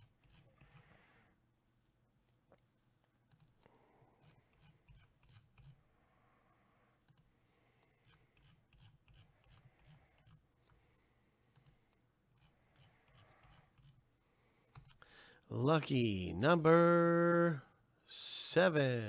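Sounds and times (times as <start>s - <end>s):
computer mouse clicks: 3.3s - 3.6s, 7.0s - 7.3s, 8.0s - 10.8s, 11.5s - 14.0s, 14.7s - 15.0s.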